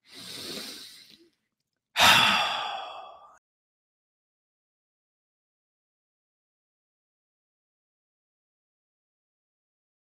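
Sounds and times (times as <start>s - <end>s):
person sighing: 2.0s - 3.4s.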